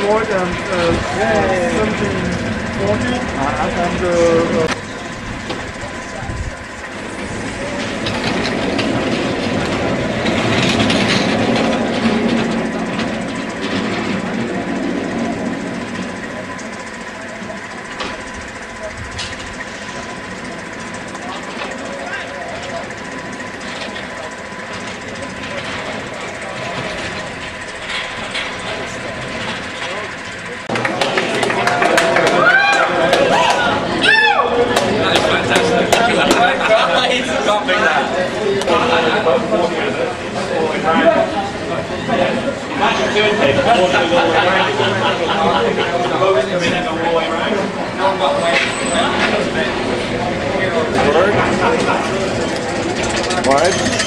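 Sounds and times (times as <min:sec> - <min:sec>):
people's voices: 0:00.0 - 0:54.0
roller coaster train on track: 0:00.0 - 0:54.0.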